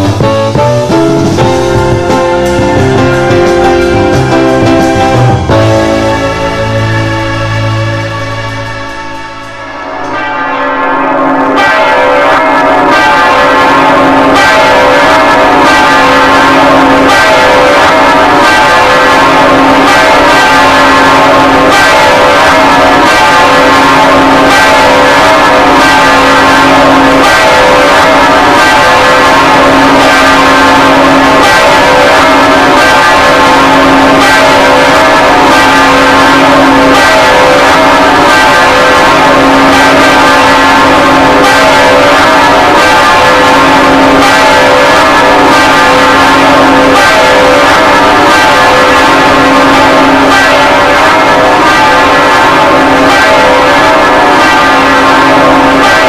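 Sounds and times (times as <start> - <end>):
church bells ringing: 0.0 - 56.0.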